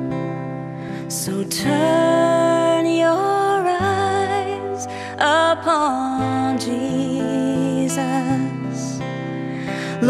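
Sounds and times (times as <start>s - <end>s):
acoustic guitars: 0.0s - 10.0s
woman singing a hymn: 1.1s - 9.0s.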